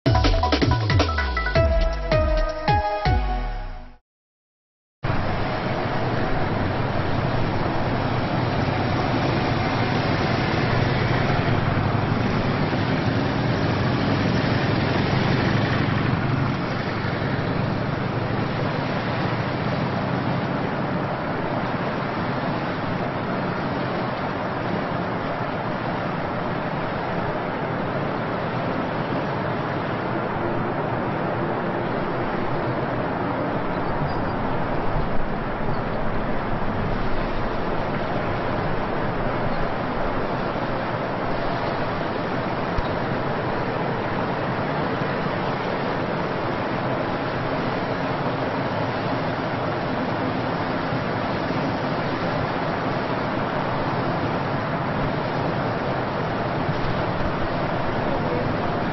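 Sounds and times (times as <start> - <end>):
motorcycles riding slowly past: 5.2 - 29.8.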